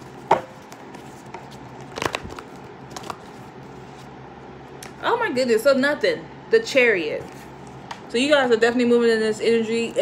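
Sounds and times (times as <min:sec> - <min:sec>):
cards being shuffled: 0:00.6 - 0:04.1.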